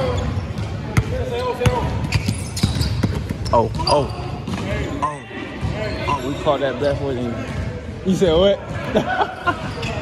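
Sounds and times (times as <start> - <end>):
players' voices: 0.0 - 10.0.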